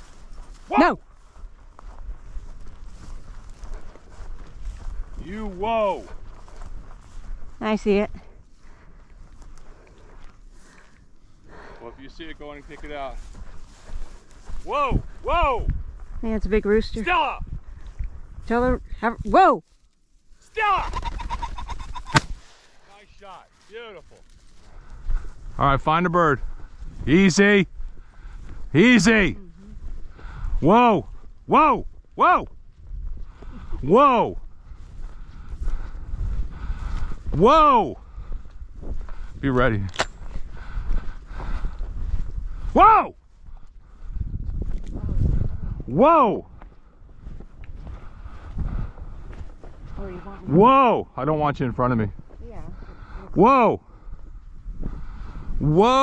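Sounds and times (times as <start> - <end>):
wind rumbling on microphone: 0.0 - 19.5, 23.8 - 56.0
footsteps through tall grass: 0.0 - 50.6, 51.6 - 55.7
pheasant cackling: 20.8 - 22.4
shotgun shot: 22.1 - 22.6.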